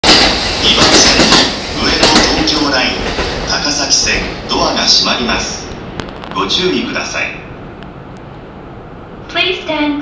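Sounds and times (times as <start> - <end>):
station platform noise: 0.0 - 10.0
public address announcement: 0.1 - 8.1, 9.2 - 10.0.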